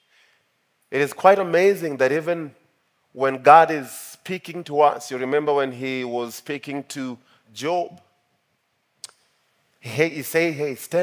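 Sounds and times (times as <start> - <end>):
man speaking: 0.9 - 2.6, 3.2 - 8.0, 9.8 - 11.0.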